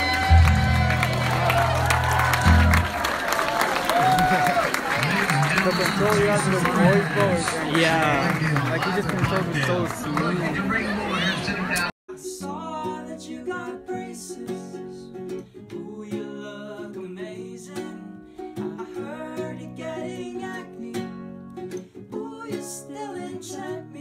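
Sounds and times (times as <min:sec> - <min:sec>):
strummed ukulele: 0:00.0 - 0:03.0, 0:12.1 - 0:24.0
man singing: 0:12.1 - 0:21.2.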